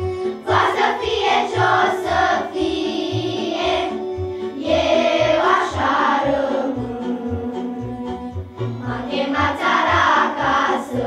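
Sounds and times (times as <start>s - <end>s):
instrumental accompaniment: 0.0s - 11.0s
girls' vocal group singing: 0.3s - 7.4s, 8.8s - 11.0s.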